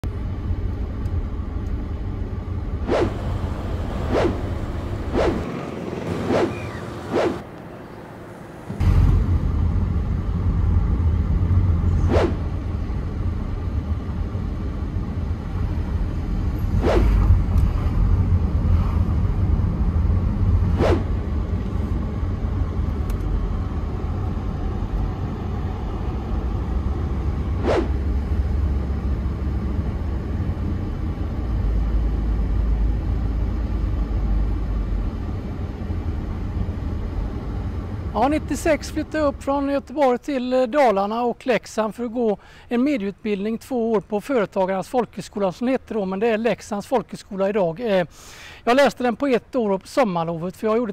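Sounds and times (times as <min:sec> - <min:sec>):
car engine and tyres rumbling: 0:00.0 - 0:43.4.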